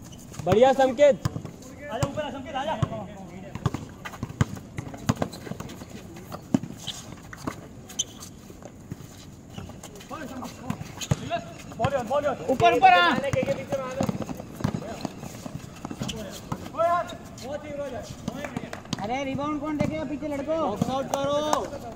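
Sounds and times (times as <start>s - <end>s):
shoes on concrete: 0.0s - 21.9s
basketball bouncing on concrete: 0.2s - 6.7s, 10.6s - 16.8s, 18.2s - 21.9s.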